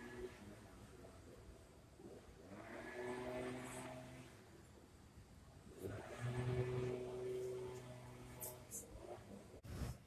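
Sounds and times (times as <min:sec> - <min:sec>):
distant engine hum: 0:00.0 - 0:10.0.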